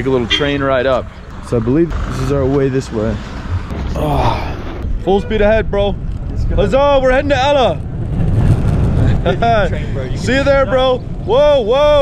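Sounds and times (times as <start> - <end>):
suitcase wheels rolling on road: 5.8 - 11.2.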